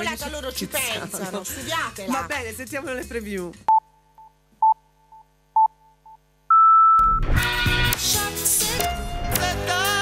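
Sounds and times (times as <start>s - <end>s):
music: 0.0s - 3.7s, 7.2s - 10.0s.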